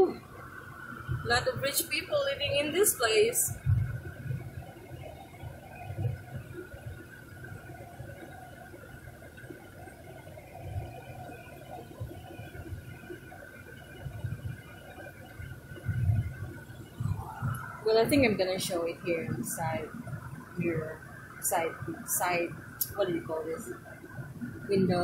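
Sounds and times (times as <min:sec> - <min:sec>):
car road and engine rumble: 0:00.0 - 0:25.0
faint high whine: 0:00.0 - 0:25.0.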